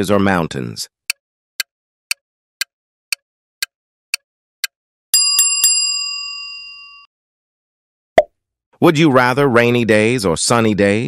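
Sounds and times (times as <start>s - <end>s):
timer ticks: 1.1s - 4.8s
bright bell ringing: 5.2s - 7.1s.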